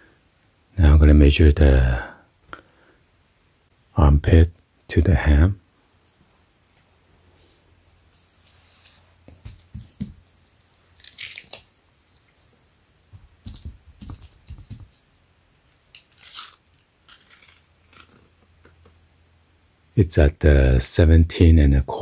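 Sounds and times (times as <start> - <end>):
dull thumps of patting: 9.3 - 10.4, 13.1 - 15.1.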